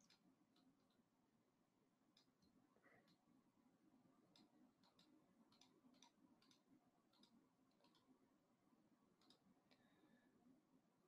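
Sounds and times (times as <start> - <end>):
computer mouse clicks: 0.0 - 1.0, 2.1 - 3.4, 4.2 - 8.2, 9.1 - 9.9.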